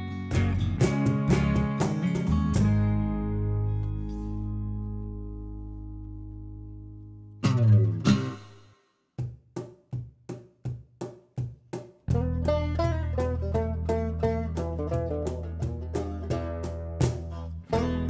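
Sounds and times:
country band music: 0:00.0 - 0:05.5, 0:07.4 - 0:08.6, 0:12.1 - 0:18.0
strummed guitar chords: 0:00.0 - 0:08.7, 0:12.1 - 0:18.0
rapid banjo picking: 0:00.3 - 0:03.2, 0:07.4 - 0:08.6, 0:12.0 - 0:18.0.

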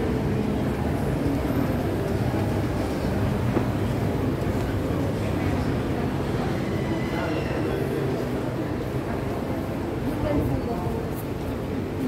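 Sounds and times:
echoing murmur of voices: 0:00.0 - 0:12.0.

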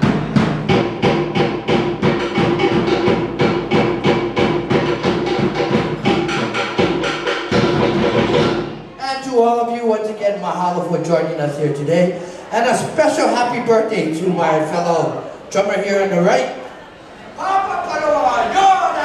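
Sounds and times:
rapid wooden slit drum strikes: 0:00.0 - 0:08.8
deep drum: 0:00.0 - 0:09.0
man speaking: 0:09.0 - 0:16.6.

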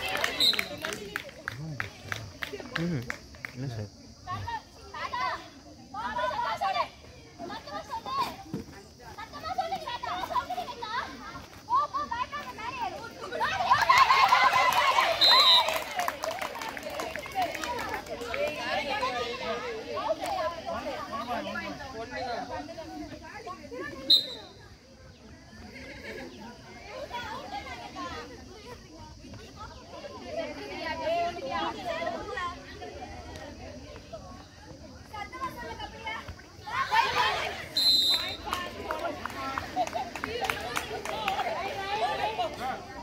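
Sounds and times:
people cheering: 0:00.0 - 0:03.0, 0:13.2 - 0:20.4, 0:36.6 - 0:43.0
girls shouting and calling: 0:04.3 - 0:21.8, 0:26.7 - 0:43.0
girls shouting: 0:11.8 - 0:15.8, 0:36.6 - 0:38.8.

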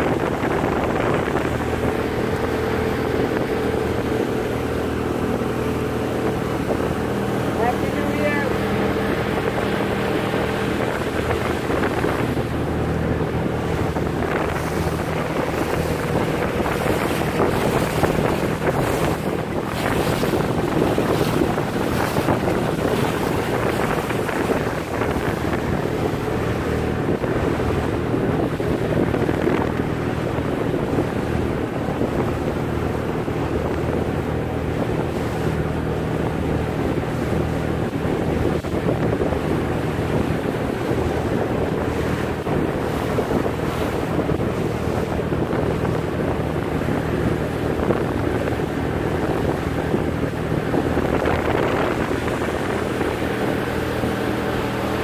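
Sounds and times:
boat motor running: 0:00.0 - 0:55.0
water rushing along hull: 0:00.0 - 0:55.0
wind buffeting microphone: 0:00.0 - 0:55.0.

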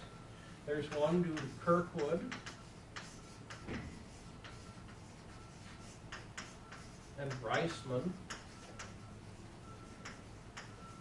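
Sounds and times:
chalk tapping on blackboard: 0:00.8 - 0:09.0, 0:09.9 - 0:10.9
chalk scraping: 0:02.4 - 0:08.8.

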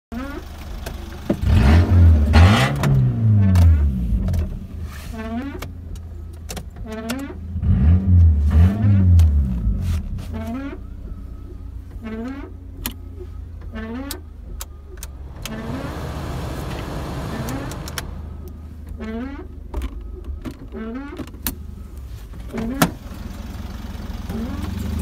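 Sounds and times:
car engine idling and revving: 0:00.1 - 0:25.0.

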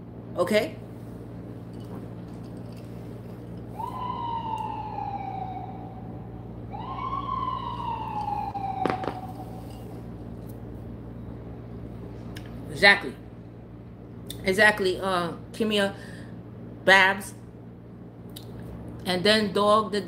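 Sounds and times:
siren-like wail: 0:03.6 - 0:10.1.

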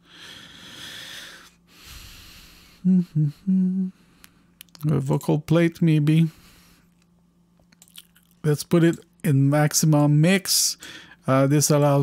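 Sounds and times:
person breathing: 0:00.0 - 0:04.6, 0:06.3 - 0:07.0, 0:10.8 - 0:11.2.

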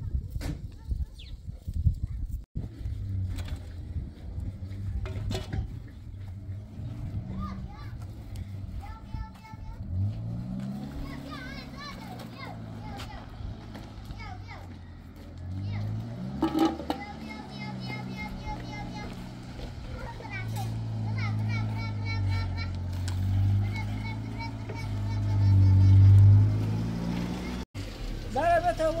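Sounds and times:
truck engine revving: 0:02.6 - 0:29.0
children calling out: 0:07.0 - 0:26.5.

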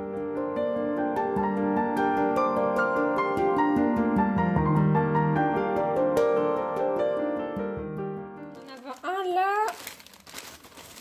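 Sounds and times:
soft piano music: 0:00.0 - 0:11.0
packing paper crinkling: 0:08.5 - 0:11.0
plastic bag rustling: 0:08.5 - 0:11.0.

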